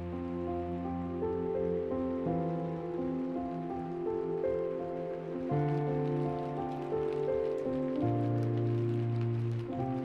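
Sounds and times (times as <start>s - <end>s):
slow orchestral film score: 0.0s - 10.0s.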